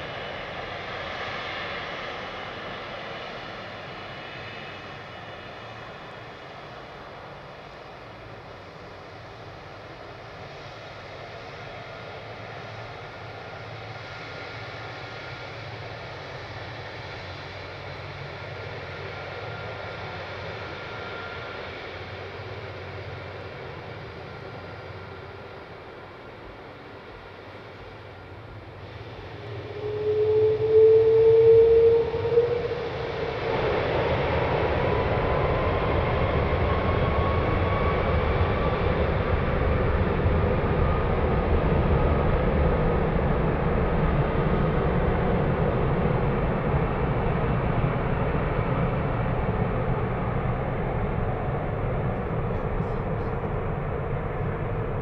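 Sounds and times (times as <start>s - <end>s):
jet engines spooling up: 0.0s - 55.0s.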